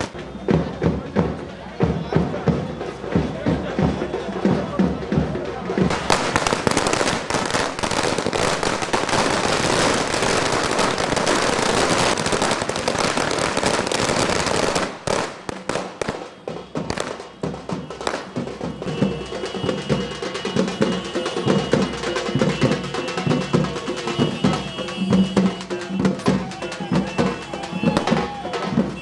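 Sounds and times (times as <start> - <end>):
firecrackers crackling: 0.0 - 29.0.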